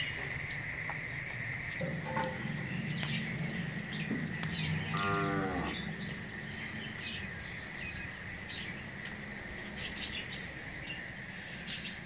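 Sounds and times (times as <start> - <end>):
birds chirping: 0.0 - 12.0
cattle mooing: 4.8 - 6.0.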